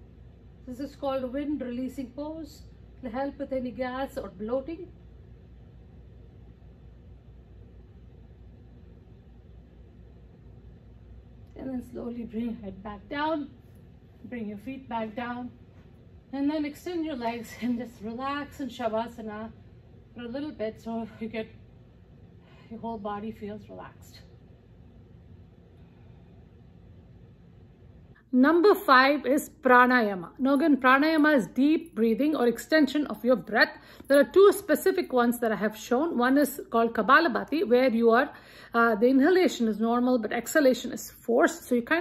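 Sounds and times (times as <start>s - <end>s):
low background hum: 0.0s - 42.0s.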